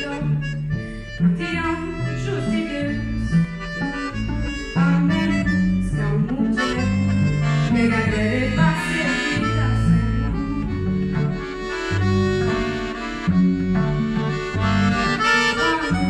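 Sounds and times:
accordion melody: 0.0s - 16.0s
cello playing low notes: 0.2s - 16.0s.

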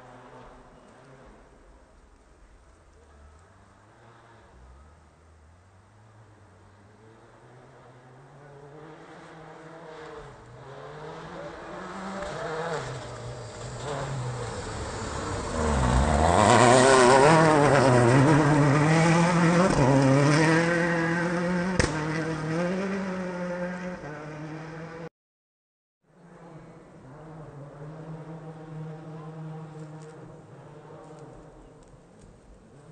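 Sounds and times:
rally car engine revving: 6.7s - 25.1s, 26.2s - 31.9s.

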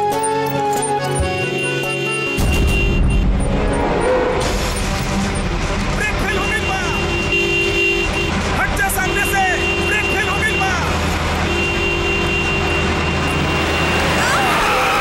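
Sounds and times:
truck engine rumbling: 0.0s - 15.0s
truck horn blasts: 0.2s - 4.5s, 6.3s - 14.2s.

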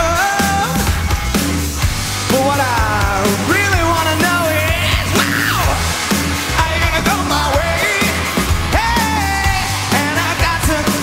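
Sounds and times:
male vocal singing: 0.0s - 0.9s, 2.3s - 5.9s, 6.5s - 11.0s
live rock drums and bass: 0.0s - 11.0s.

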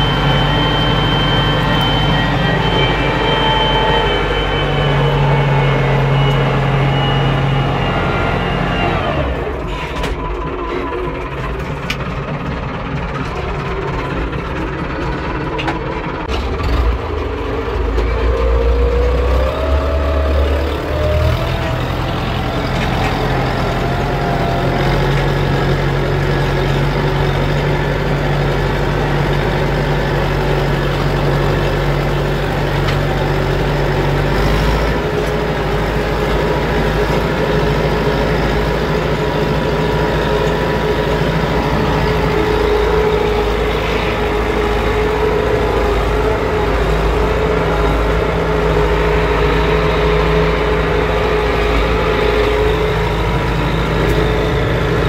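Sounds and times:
tractor diesel engine under load: 0.0s - 55.0s.

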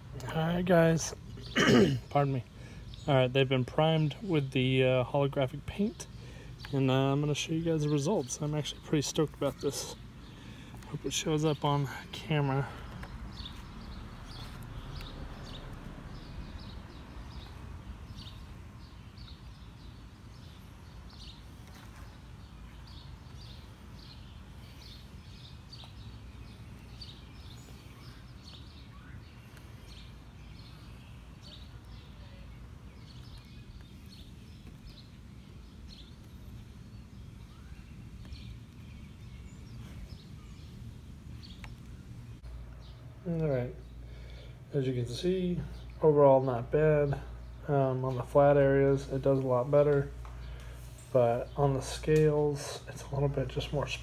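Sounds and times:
low outdoor rumble: 0.0s - 54.0s
small birds chirping: 0.0s - 54.0s.

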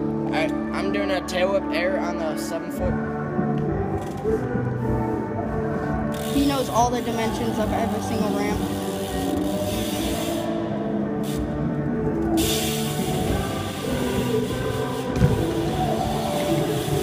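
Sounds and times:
music with sustained notes: 0.0s - 17.0s.

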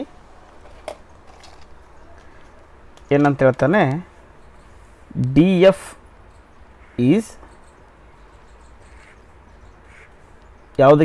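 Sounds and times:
man speaking: 3.1s - 4.1s, 5.1s - 6.0s, 7.0s - 7.4s, 10.8s - 11.0s.

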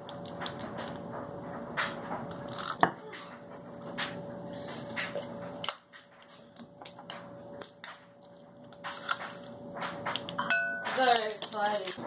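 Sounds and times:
measuring spoons clinking: 10.4s - 11.9s.

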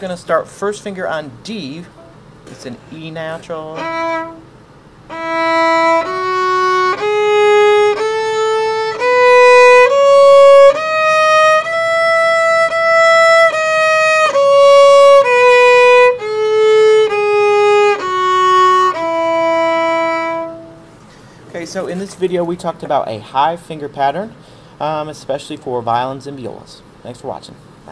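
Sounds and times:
violin playing a scale: 3.2s - 20.9s.

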